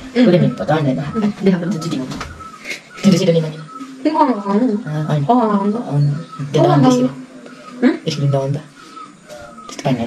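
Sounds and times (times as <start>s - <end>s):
boys chattering: 0.0s - 10.0s.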